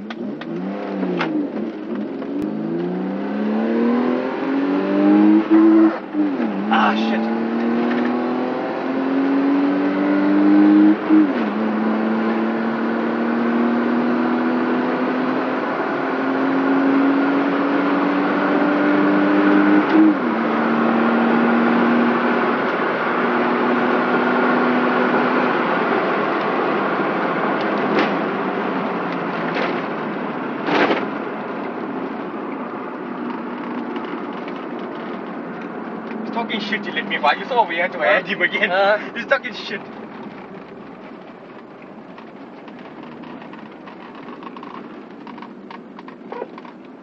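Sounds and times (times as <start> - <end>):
car engine accelerating: 0.0 - 47.0
road and wind noise: 0.0 - 47.0.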